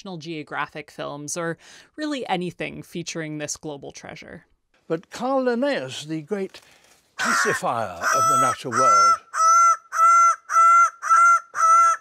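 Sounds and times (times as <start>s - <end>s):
bird honking calls: 7.2s - 12.0s.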